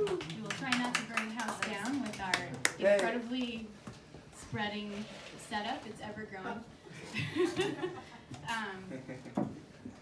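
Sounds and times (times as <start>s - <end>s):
people chatting: 0.1s - 3.6s
woman speaking into microphone: 0.3s - 3.7s.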